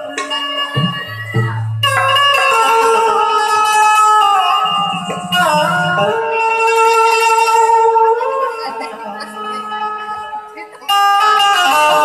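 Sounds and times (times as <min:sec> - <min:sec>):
tabla bass strokes: 0:00.0 - 0:10.4
indian banjo melody: 0:00.0 - 0:12.0.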